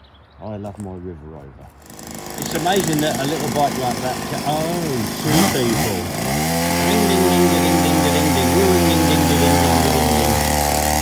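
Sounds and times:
dirt bike engine revving: 1.8s - 11.0s.

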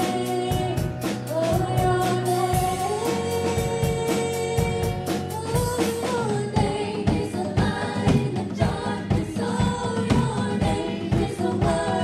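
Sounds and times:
keyboard accompaniment: 0.0s - 10.0s
women singing gospel: 0.0s - 12.0s.

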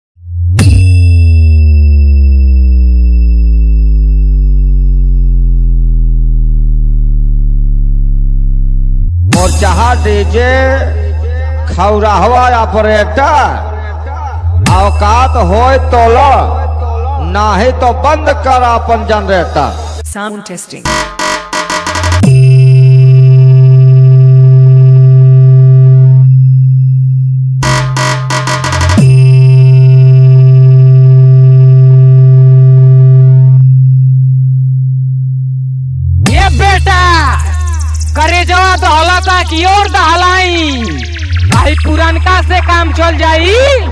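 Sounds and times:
synthesized deep bass drone: 0.2s - 20.1s, 20.9s - 43.9s
stuttering chopped burst: 20.9s - 22.4s, 27.6s - 29.2s, 36.3s - 43.9s.

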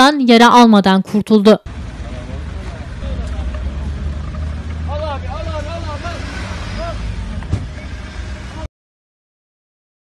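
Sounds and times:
people talking: 0.0s - 7.4s
engines idling low rumble: 1.7s - 8.7s
voices calling out loudly: 1.7s - 8.7s.

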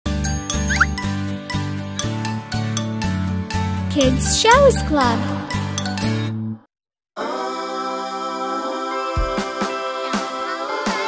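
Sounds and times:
bouncy children's music jingle: 0.1s - 6.4s.

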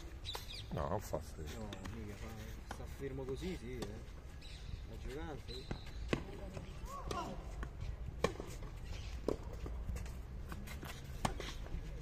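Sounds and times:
tennis ball bouncing on clay: 1.6s - 12.0s
tennis ball struck by rackets: 6.0s - 9.8s, 10.5s - 11.8s.

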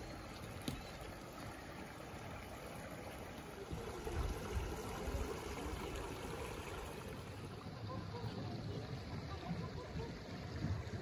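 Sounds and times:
creek trickling over rocks: 0.0s - 11.0s.

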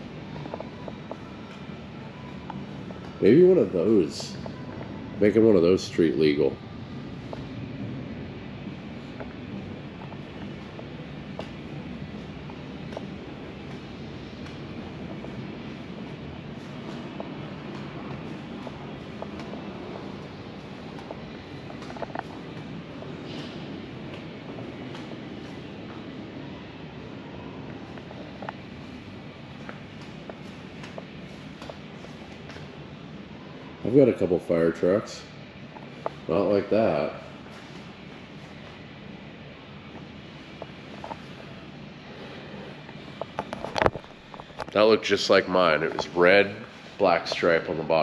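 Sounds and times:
low indoor room rumble: 0.0s - 48.0s.

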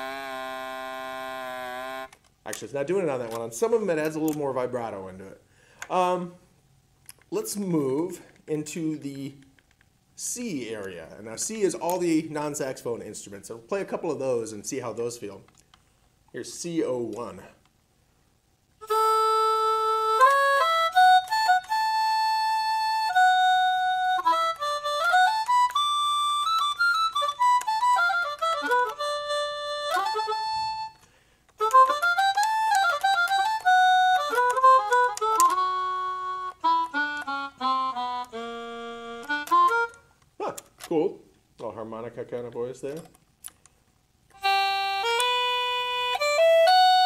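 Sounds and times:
digital wind instrument melody: 0.0s - 2.2s, 18.8s - 31.0s, 31.6s - 40.0s, 44.4s - 47.0s.

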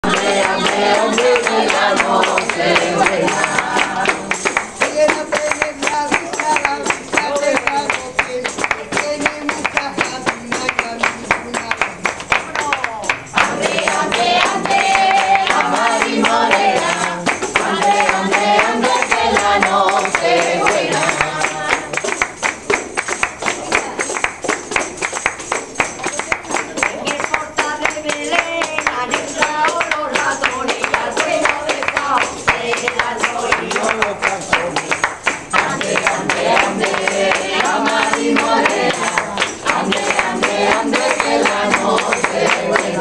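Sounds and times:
people singing: 0.0s - 24.2s, 26.3s - 43.0s
music: 0.0s - 43.0s
people clapping in rhythm: 0.0s - 43.0s.

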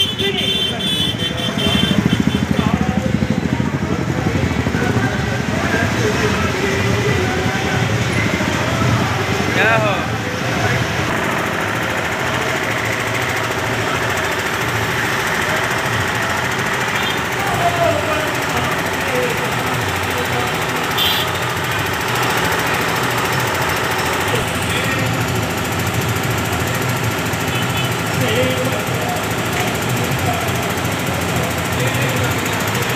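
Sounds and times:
diesel engine running: 0.0s - 32.9s
people's voices: 0.0s - 32.9s.

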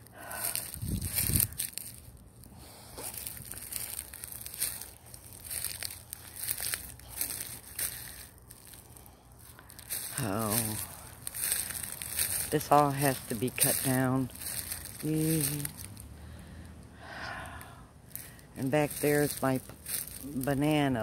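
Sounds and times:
footsteps crunching dry leaves: 0.0s - 16.4s, 18.1s - 21.0s
low rumble on microphone: 0.1s - 12.5s.

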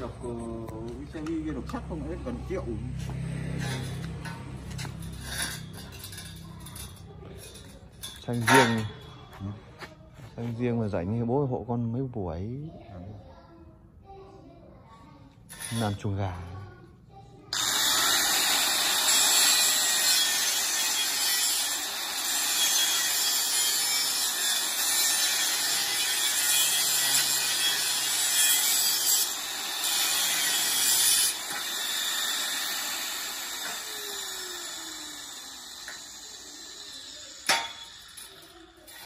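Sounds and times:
angle grinder grinding steel: 0.0s - 9.3s, 15.5s - 16.2s, 17.5s - 39.0s.

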